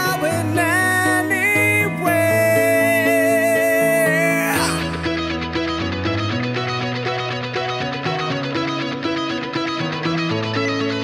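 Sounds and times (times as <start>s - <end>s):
electric guitar: 0.0s - 11.0s.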